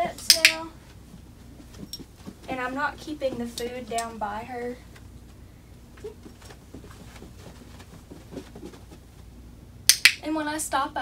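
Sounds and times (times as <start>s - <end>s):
footsteps on carpet: 0.8s - 3.9s, 6.0s - 9.3s
puppy paws on carpet: 0.8s - 4.3s, 4.9s - 9.4s.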